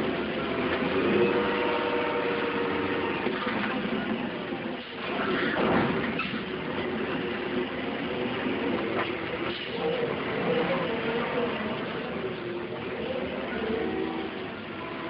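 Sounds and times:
crane engine running: 0:00.0 - 0:15.0.

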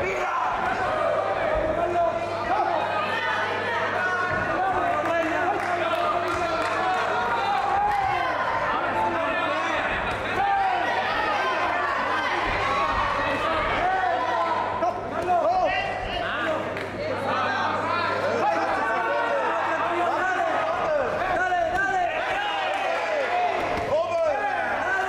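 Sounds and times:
spectators shouting: 0:00.0 - 0:16.0, 0:18.3 - 0:25.0.

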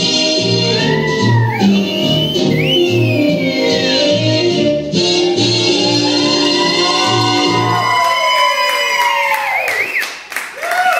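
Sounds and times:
big band swing music: 0:00.0 - 0:07.6
audience cheering and whooping: 0:00.4 - 0:03.9, 0:05.0 - 0:10.9
people clapping: 0:06.2 - 0:10.9.

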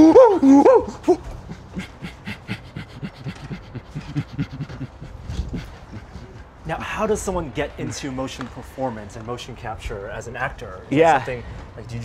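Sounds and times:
man making panting grunts: 0:01.0 - 0:06.6.

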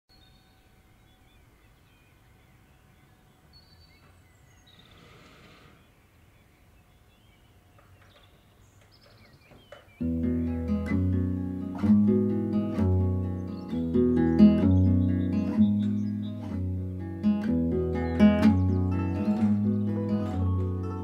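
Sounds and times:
distant bird chirps: 0:00.1 - 0:21.0.

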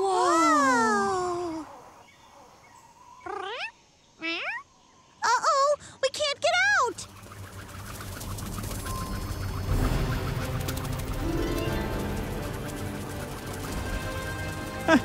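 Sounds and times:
cartoon helicopter rotor: 0:06.2 - 0:15.0.

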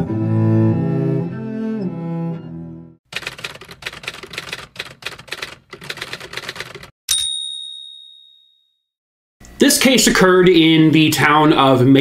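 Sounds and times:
typewriter keys clacking: 0:03.1 - 0:06.9
typewriter bell ding: 0:07.1 - 0:08.8.

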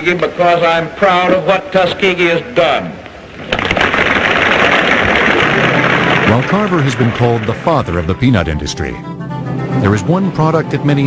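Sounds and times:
crowd applauding: 0:03.5 - 0:08.3.

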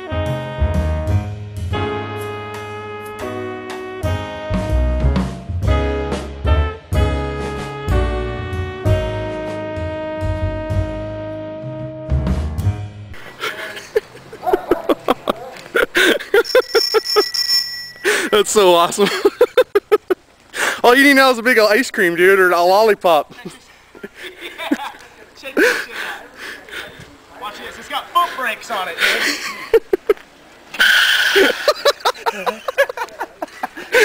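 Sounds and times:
people laughing: 0:13.2 - 0:17.3, 0:19.0 - 0:20.2, 0:24.0 - 0:27.1, 0:29.0 - 0:30.2, 0:30.8 - 0:34.0
bicycle bell ringing: 0:16.3 - 0:18.8.

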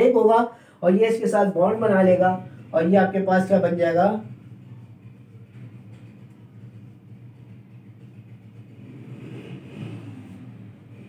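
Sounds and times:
low steady rumble: 0:01.0 - 0:11.0.

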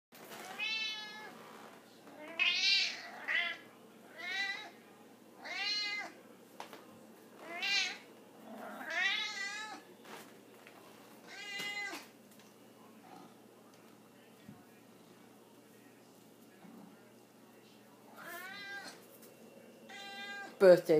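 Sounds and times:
cat meowing: 0:00.5 - 0:01.4, 0:02.1 - 0:04.8, 0:05.4 - 0:06.2, 0:07.4 - 0:08.0, 0:08.8 - 0:09.8, 0:11.3 - 0:12.1, 0:18.2 - 0:19.0, 0:19.9 - 0:20.6.

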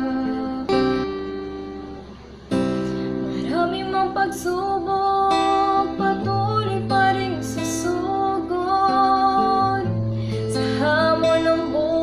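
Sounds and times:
woman singing: 0:00.0 - 0:01.7, 0:03.3 - 0:12.0
guitar accompaniment: 0:00.0 - 0:12.0.

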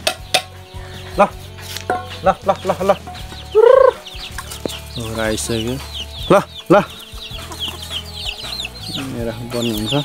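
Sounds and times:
chicks peeping: 0:00.0 - 0:10.0
man calling with sung calls: 0:01.0 - 0:01.5, 0:02.1 - 0:04.2, 0:04.8 - 0:07.1.

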